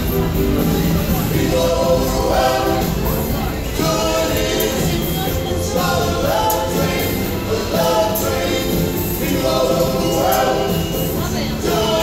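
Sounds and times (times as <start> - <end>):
backing music with steady beat: 0.0 - 12.0
voices singing gospel song: 0.7 - 12.0.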